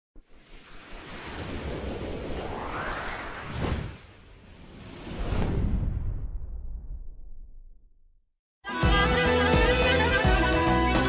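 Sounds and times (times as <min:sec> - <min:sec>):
whoosh with low rumble: 0:00.2 - 0:08.2.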